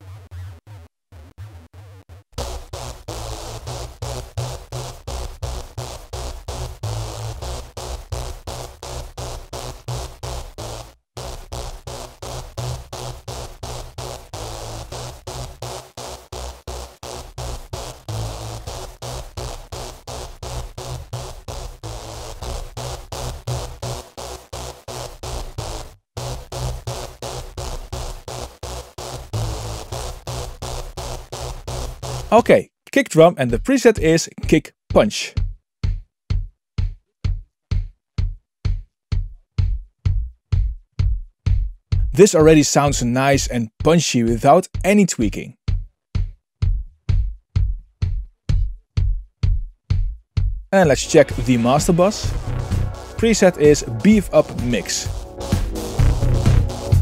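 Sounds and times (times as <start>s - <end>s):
thick sub-bass: 50.4s - 57.0s
pulsing electronic synth lead: 51.0s - 57.0s.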